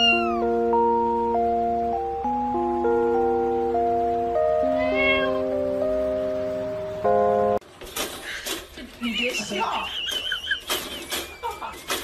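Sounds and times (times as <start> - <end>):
dog whining: 0.0 - 0.6.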